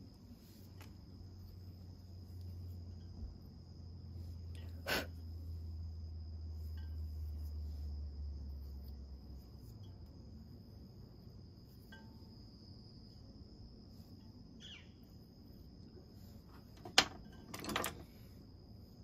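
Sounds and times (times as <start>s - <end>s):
low hum: 0.0s - 16.6s.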